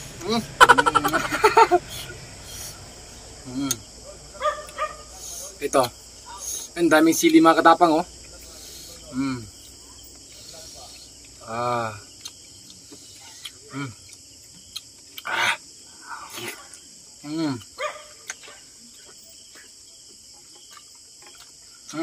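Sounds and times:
crickets trilling: 0.0s - 22.0s.

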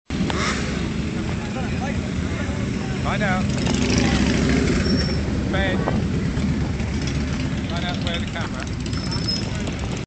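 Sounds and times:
motorcycle engines idling: 0.1s - 10.0s.

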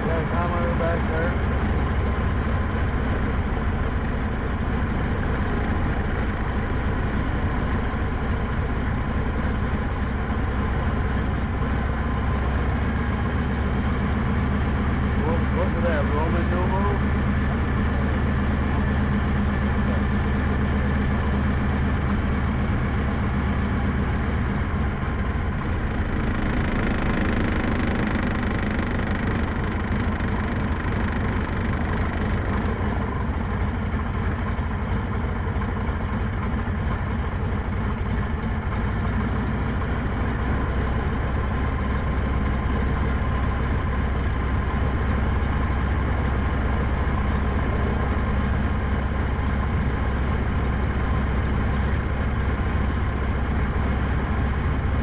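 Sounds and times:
propeller plane engine droning: 0.0s - 55.0s.

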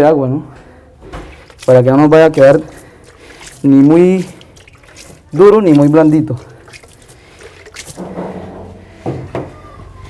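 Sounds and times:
dough squelching: 1.1s - 8.5s.

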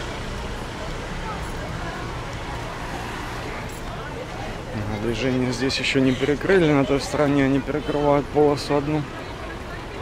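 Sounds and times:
car engines and tyres: 0.0s - 10.0s
faint voices of passers-by: 0.0s - 10.0s.

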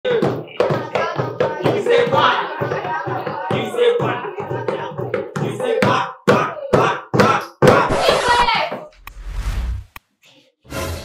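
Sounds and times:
young voices: 0.5s - 4.5s, 6.4s - 8.9s.

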